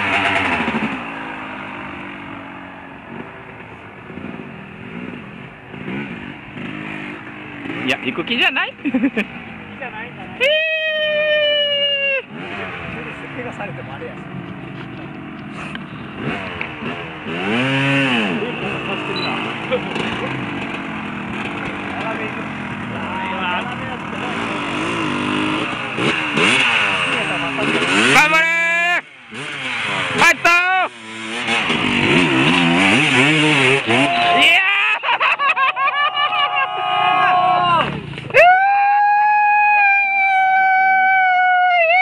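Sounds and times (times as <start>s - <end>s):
dirt bike engines revving: 0.0s - 42.0s.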